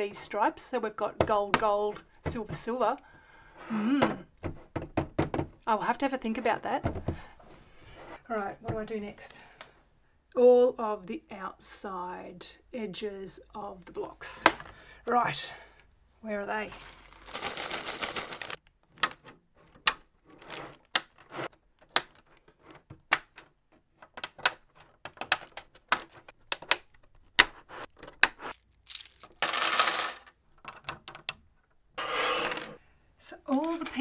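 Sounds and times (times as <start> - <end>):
plastic rustling: 16.7 - 18.6
plastic bricks clicking and snapping: 23.0 - 29.3.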